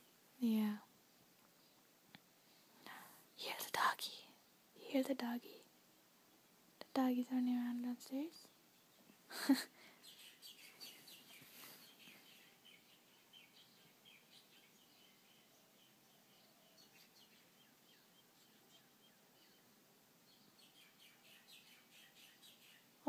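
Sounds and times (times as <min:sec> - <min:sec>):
small birds chirping: 0:00.0 - 0:23.0.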